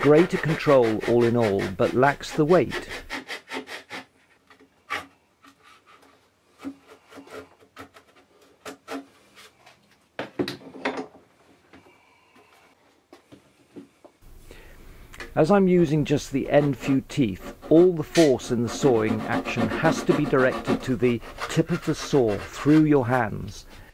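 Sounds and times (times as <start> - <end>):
saw rasping strokes: 0.0 - 4.1, 15.8 - 23.9.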